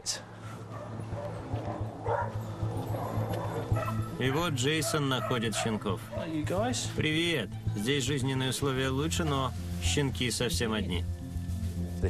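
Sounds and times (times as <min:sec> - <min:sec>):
background music with low pulse: 0:00.3 - 0:12.0
dogs barking and yipping: 0:00.4 - 0:06.7.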